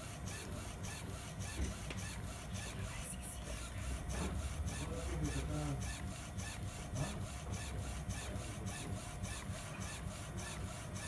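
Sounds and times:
printer carriage moving mechanically: 0:03.6 - 0:11.0.

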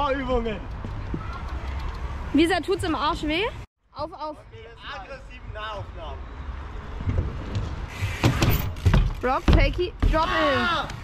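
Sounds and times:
bicycle tyres rolling on concrete: 0:07.1 - 0:10.1.

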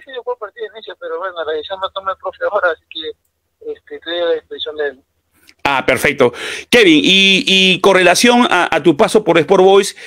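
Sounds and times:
man speaking over telephone: 0:00.0 - 0:09.8.

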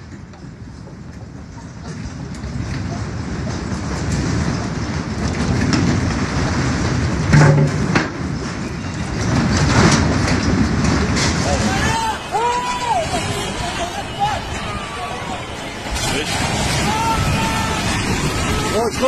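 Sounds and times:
earthquake rumble: 0:00.0 - 0:19.0.

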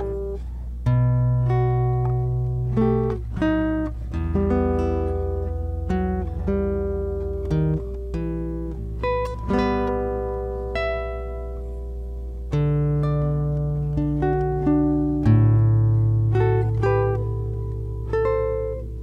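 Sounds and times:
classical guitar fingerstyle melody: 0:00.0 - 0:19.0.

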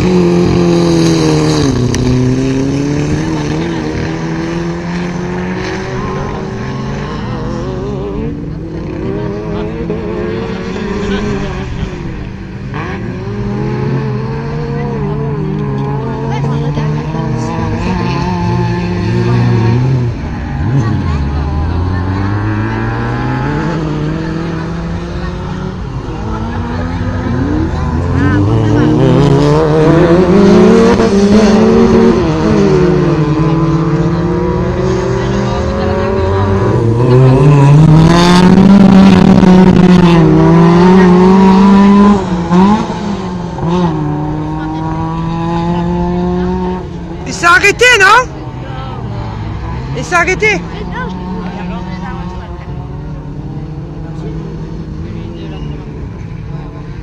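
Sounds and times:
race car engine revving: 0:00.0 - 0:57.0.

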